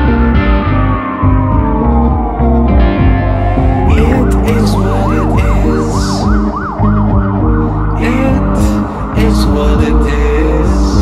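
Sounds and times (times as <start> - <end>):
sustained low bass notes: 0.0 - 11.0.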